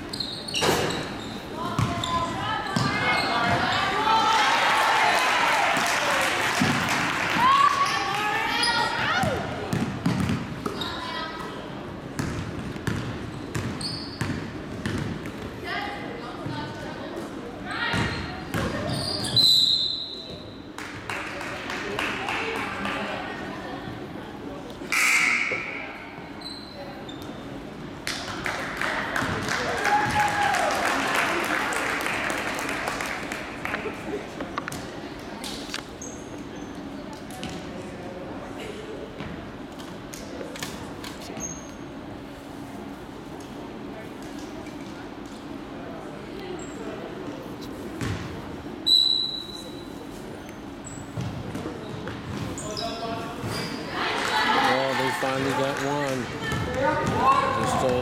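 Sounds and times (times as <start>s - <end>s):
shoe squeaks: 0.0s - 3.9s, 13.2s - 14.5s, 18.0s - 20.6s, 25.0s - 27.6s, 35.9s - 37.0s, 41.3s - 41.9s, 48.8s - 53.9s
voices of players and spectators: 0.0s - 58.0s
basketball bouncing: 1.8s - 2.0s, 9.7s - 10.8s, 12.2s - 15.4s, 48.0s - 48.3s, 56.4s - 57.3s
referee's whistle: 19.2s - 20.3s, 24.9s - 25.8s, 48.8s - 49.8s.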